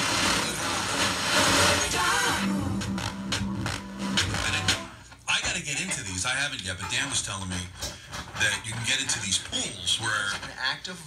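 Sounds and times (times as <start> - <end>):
radio static hiss: 0.0 - 2.4
faint radio broadcast: 0.0 - 11.0
music from radio: 0.0 - 11.0.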